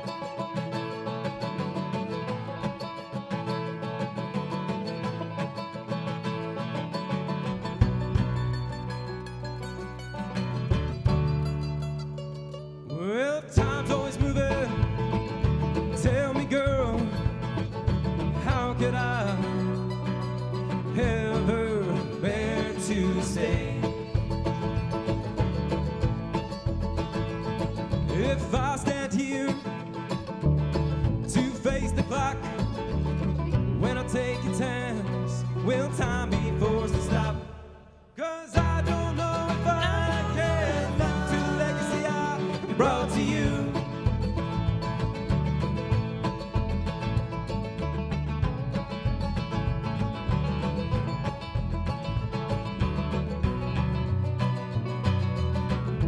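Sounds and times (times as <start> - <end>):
acoustic guitar: 0.0 - 56.0
banjo: 0.0 - 56.0
upright bass: 0.0 - 56.0
man singing lead vocal: 12.9 - 15.2, 15.9 - 17.4, 18.3 - 19.8, 20.8 - 24.2, 28.1 - 29.8, 31.2 - 32.8, 33.8 - 44.2.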